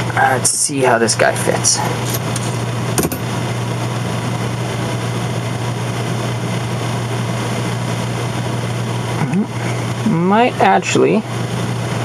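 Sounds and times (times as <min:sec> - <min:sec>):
steady background hum and hiss: 0:00.0 - 0:12.0.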